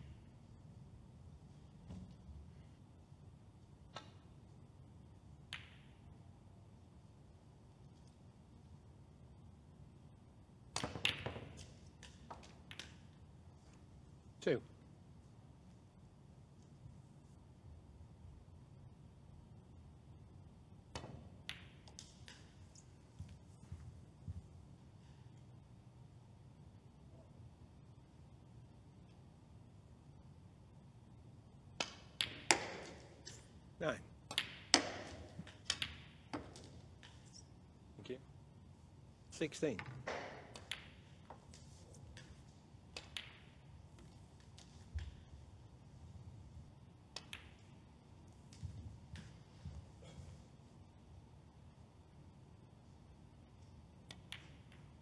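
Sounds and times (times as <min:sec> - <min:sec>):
snooker balls clicking: 0:03.8 - 0:06.3, 0:10.6 - 0:13.9, 0:20.8 - 0:23.7, 0:31.7 - 0:37.7, 0:39.7 - 0:50.0, 0:53.4 - 0:55.0
snooker balls cracking together: 0:10.7 - 0:13.2, 0:31.7 - 0:33.6, 0:34.2 - 0:37.5, 0:39.8 - 0:46.0, 0:47.0 - 0:50.0.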